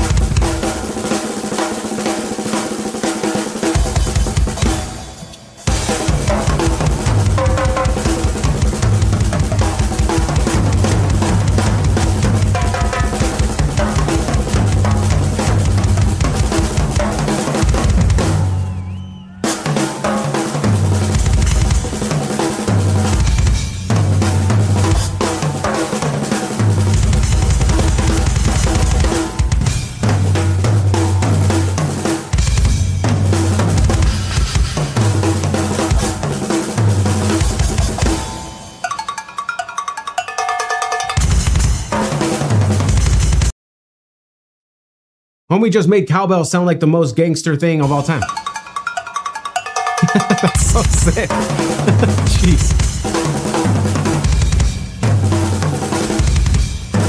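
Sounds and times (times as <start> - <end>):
rock drum solo: 0.0 - 43.5, 49.4 - 57.0
cowbell hits: 38.3 - 41.5, 48.2 - 51.9.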